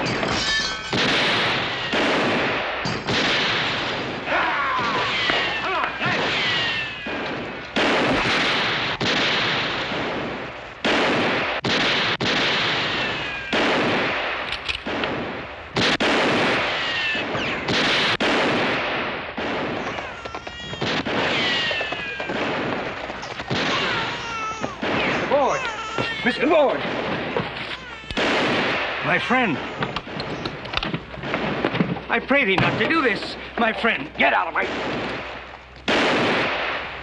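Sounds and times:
ricochet whine: 0.0 - 10.6
revolver shots echoing: 0.9 - 25.7.

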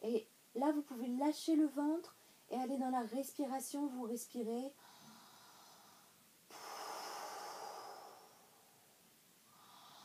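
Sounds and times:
woman breathing deeply: 4.8 - 10.0.

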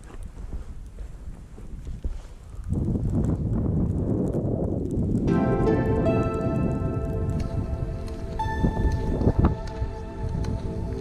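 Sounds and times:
skis sliding over snow: 0.0 - 3.8
wind buffeting microphone: 0.0 - 11.0.

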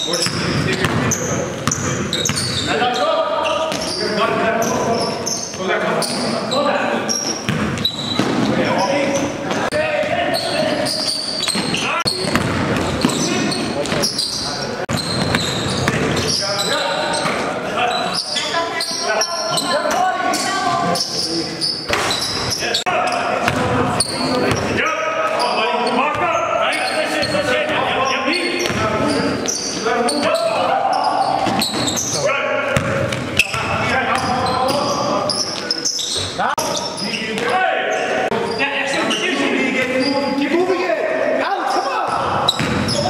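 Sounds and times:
basketball bouncing on court floor: 0.2 - 2.7, 7.4 - 10.2, 11.4 - 14.1, 14.9 - 16.4, 23.4 - 23.8, 28.6 - 29.0, 32.7 - 34.4, 42.5 - 43.0.

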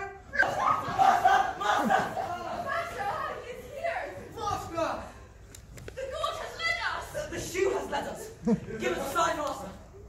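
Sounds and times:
young voices shouting: 0.0 - 5.1.

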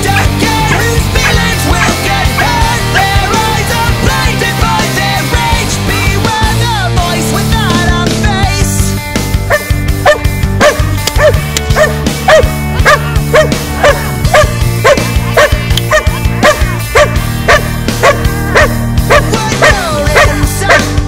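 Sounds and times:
loud rock music: 0.0 - 21.0
dog barking: 9.5 - 20.9.

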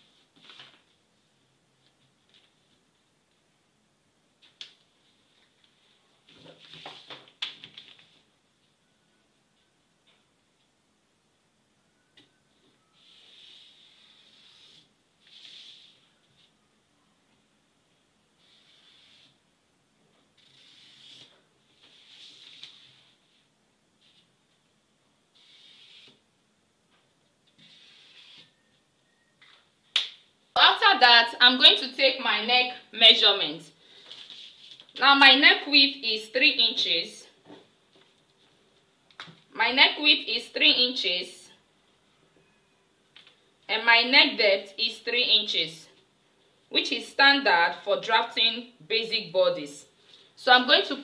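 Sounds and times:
paper rustling: 0.3 - 1.0, 33.9 - 35.0
person speaking: 30.6 - 33.7, 35.0 - 37.4, 39.5 - 41.5, 43.7 - 45.9.

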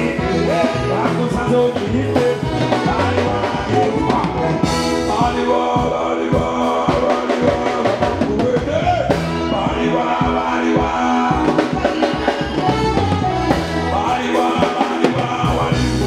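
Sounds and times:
trumpet: 0.0 - 8.3, 9.1 - 16.0
drum kit: 0.0 - 16.0
electric bass: 0.0 - 16.0
person singing: 0.0 - 16.0.

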